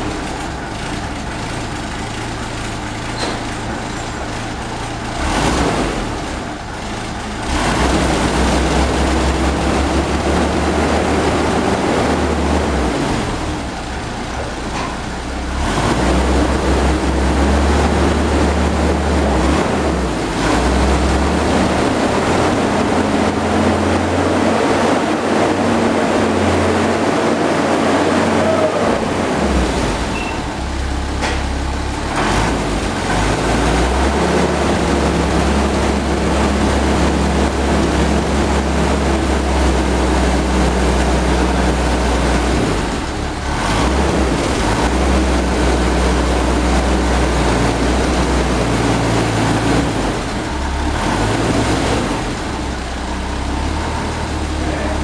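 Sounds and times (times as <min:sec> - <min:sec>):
engine revving: 0:04.5 - 0:55.0.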